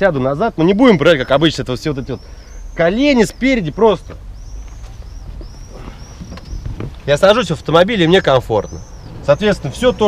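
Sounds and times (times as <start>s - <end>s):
faint high chirping: 0.9s - 10.0s.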